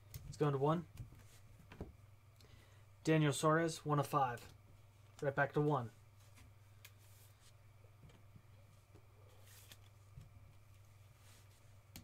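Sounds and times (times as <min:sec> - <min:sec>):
low steady hum: 0:00.0 - 0:12.0
trading cards being handled: 0:08.9 - 0:12.0.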